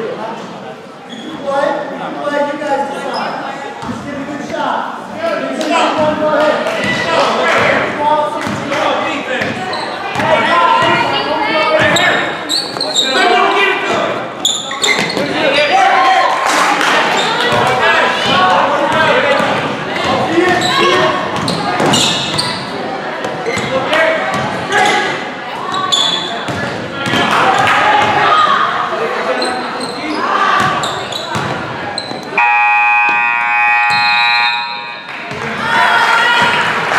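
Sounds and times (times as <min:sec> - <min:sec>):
scoreboard horn blast: 0:32.4 - 0:35.1
spectators shouting: 0:33.3 - 0:36.9.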